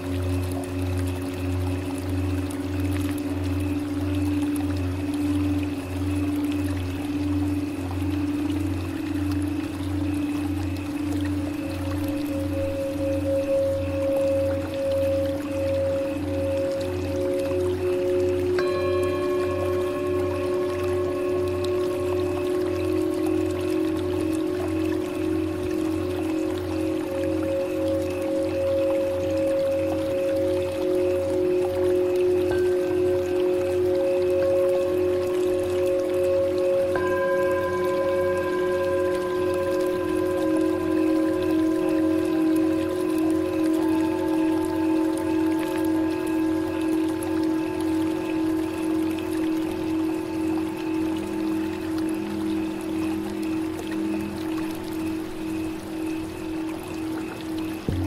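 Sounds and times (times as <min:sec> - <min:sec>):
low pulsing drone: 0:00.0 - 0:58.0
singing bowls ringing: 0:00.0 - 0:58.0
trickle of running water: 0:00.0 - 0:58.0.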